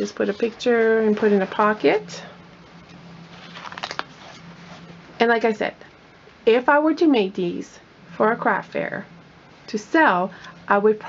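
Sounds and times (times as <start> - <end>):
paper pages rustling: 3.2 - 4.9.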